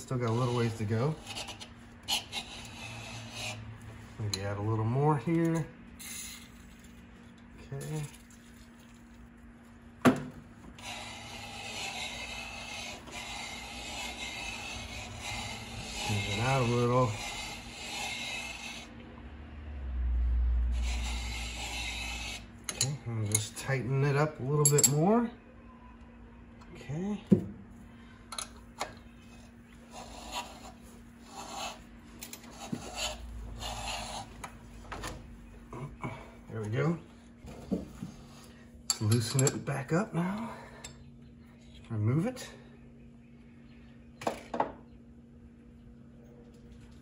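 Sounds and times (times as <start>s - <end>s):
blade rasping on metal: 0.0s - 4.6s, 10.7s - 18.9s, 20.7s - 23.6s, 29.8s - 34.4s.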